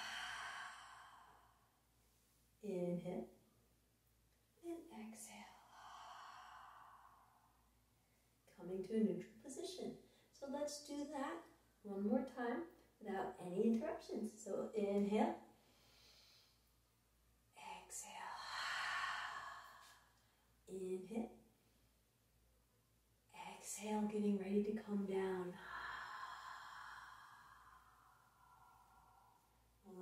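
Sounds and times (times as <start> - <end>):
woman's breathy exhale: 0.0 - 1.7, 18.4 - 20.2, 25.6 - 29.6.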